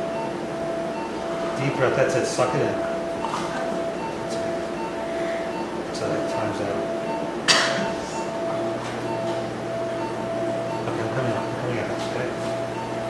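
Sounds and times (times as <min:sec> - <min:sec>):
rapid repeating beep: 0:00.0 - 0:13.0
steady electronic tone: 0:00.0 - 0:13.0.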